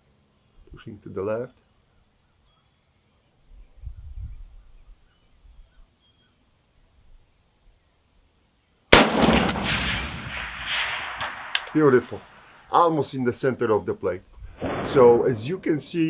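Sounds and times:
rifle shot with echo: 0:08.9 - 0:12.6, 0:14.6 - 0:15.4
short metallic ring: 0:09.5 - 0:09.9.

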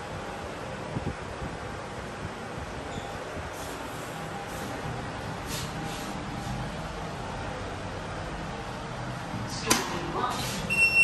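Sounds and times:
lift car running noise: 0:00.0 - 0:11.0.

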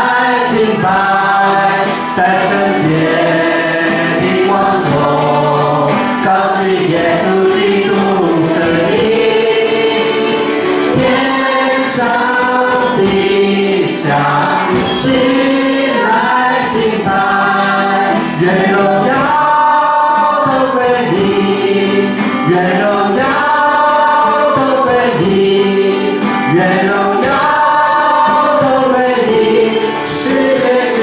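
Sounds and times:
electronic keyboard: 0:00.0 - 0:31.0
woman leading group singing: 0:00.0 - 0:31.0.

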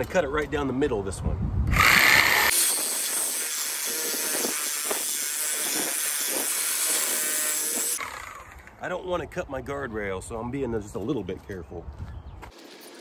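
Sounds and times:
reciprocating saw cutting metal: 0:01.7 - 0:08.8.

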